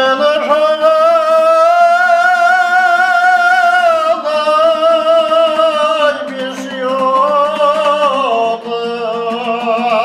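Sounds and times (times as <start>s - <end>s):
strummed lute: 0.0s - 10.0s.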